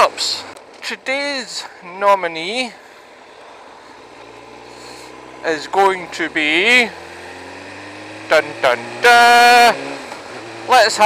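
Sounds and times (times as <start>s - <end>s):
faint outdoor background noise: 0.0s - 11.0s
low engine hum: 3.0s - 10.7s.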